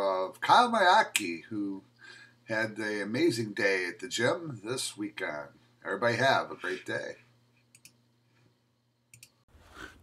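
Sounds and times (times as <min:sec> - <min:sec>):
man speaking: 0:00.0 - 0:01.8, 0:02.5 - 0:07.2
faint steady low hum: 0:00.0 - 0:10.0.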